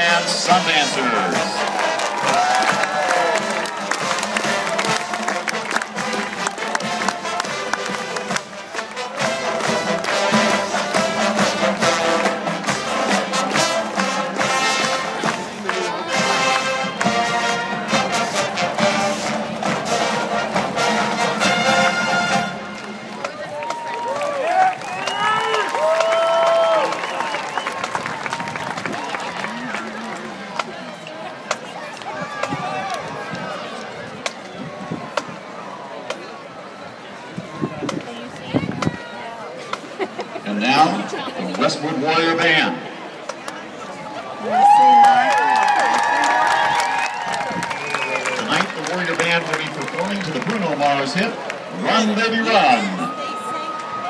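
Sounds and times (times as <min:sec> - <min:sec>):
marching band playing: 0:00.0 - 0:30.8
crowd cheering and yelling: 0:00.0 - 0:54.0.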